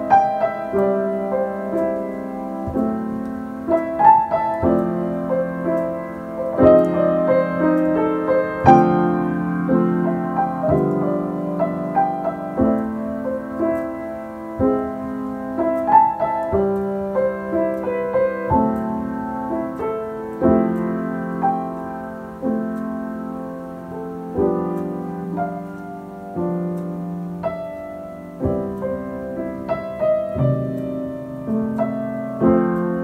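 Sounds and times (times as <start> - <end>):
solo piano ballad: 0.0 - 33.0.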